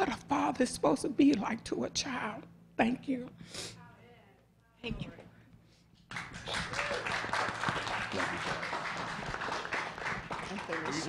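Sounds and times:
crowd applauding: 6.1s - 11.0s.

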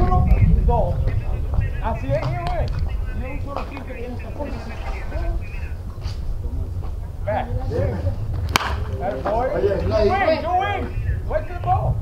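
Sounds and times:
wooden bat cracking ball: 8.4s - 9.1s.

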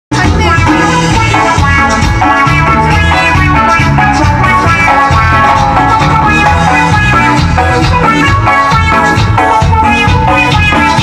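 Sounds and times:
bass line: 0.1s - 11.0s
drums: 0.1s - 11.0s
live band music: 0.1s - 11.0s.

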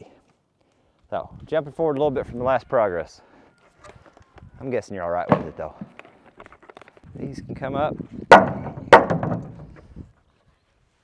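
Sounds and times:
wood clattering: 5.2s - 7.0s, 8.2s - 10.0s
hammer striking wood: 8.3s - 9.7s.

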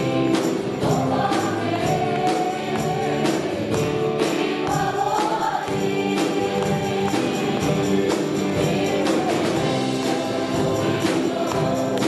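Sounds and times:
guitar: 0.0s - 12.0s
women singing a hymn: 0.0s - 12.0s.

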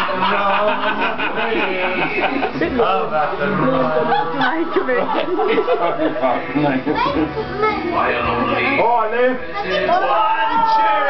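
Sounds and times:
adults talking and calling out: 0.0s - 11.0s.

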